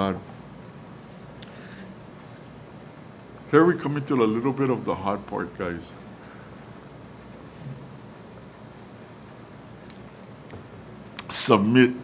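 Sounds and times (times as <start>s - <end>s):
steady room noise: 0.0s - 12.0s.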